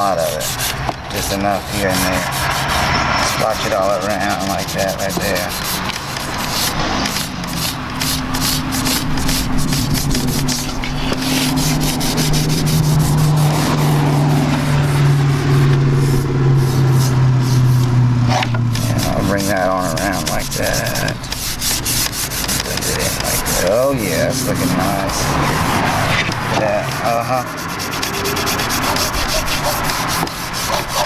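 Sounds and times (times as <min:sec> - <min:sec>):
cloth rag rubbing on wood: 0:00.0 - 0:13.8, 0:18.7 - 0:31.0.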